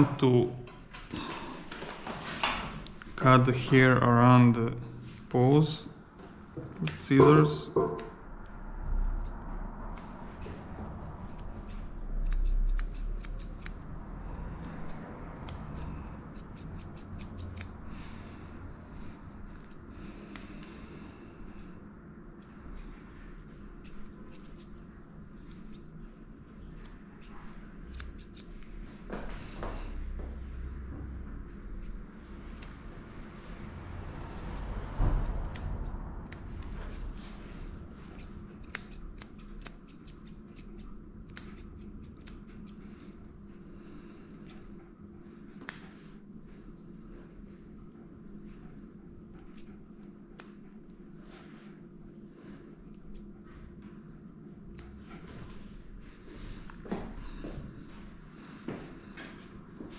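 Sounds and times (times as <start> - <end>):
scissors snipping hair: 6.4 - 8.2, 9.0 - 10.6, 11.2 - 17.9, 19.4 - 20.8, 21.4 - 21.7, 22.3 - 26.0, 26.6 - 28.7, 31.6 - 33.0, 34.1 - 37.2, 37.8 - 43.0, 45.5 - 46.0, 49.4 - 49.7, 50.3 - 51.0, 52.9 - 53.3, 54.7 - 55.0.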